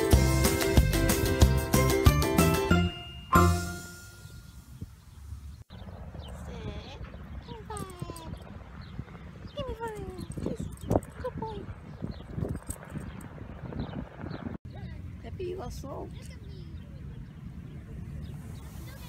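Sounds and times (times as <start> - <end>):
low outdoor rumble: 4.8 - 19.0.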